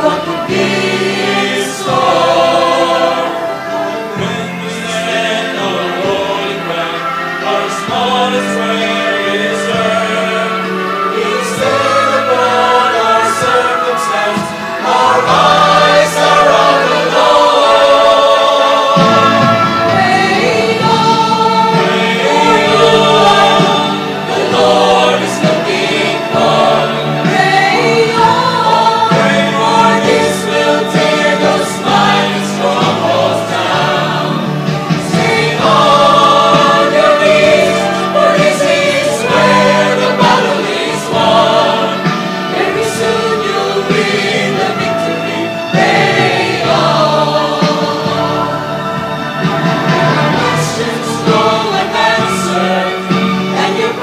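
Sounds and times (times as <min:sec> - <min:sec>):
choir singing gospel song: 0:00.0 - 0:54.0.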